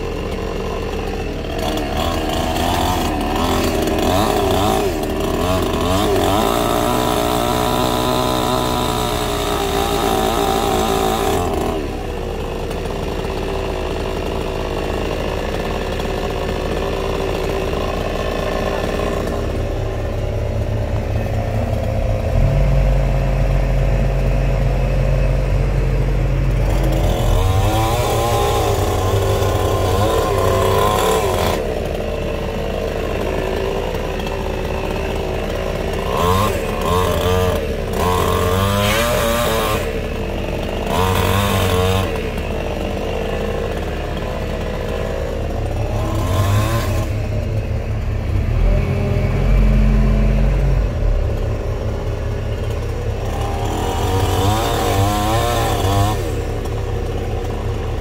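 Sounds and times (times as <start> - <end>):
chainsaw cutting branches: 0.0 - 58.0
deep engine drone: 0.0 - 58.0
low engine hum: 0.0 - 58.0.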